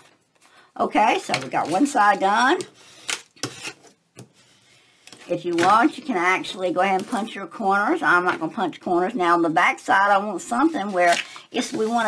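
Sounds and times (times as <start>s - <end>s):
paper and card rustling: 0.0s - 7.5s, 10.5s - 12.0s.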